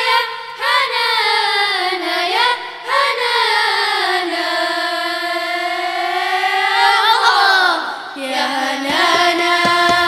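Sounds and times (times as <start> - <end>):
girls' choir singing: 0.0 - 10.0.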